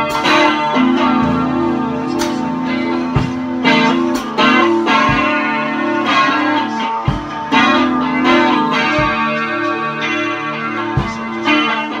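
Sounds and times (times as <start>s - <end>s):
drum kit hits: 0.0s - 12.0s
electric guitar chords: 0.0s - 12.0s.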